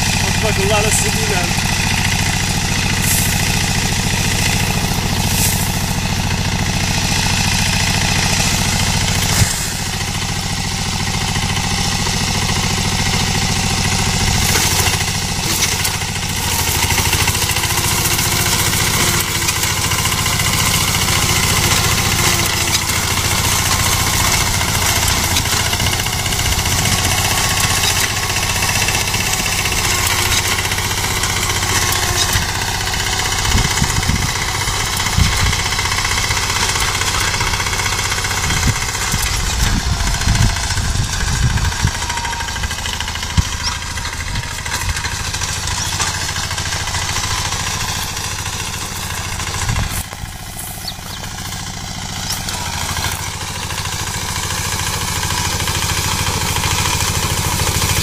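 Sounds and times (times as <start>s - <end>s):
small engine running under load: 0.0s - 58.0s.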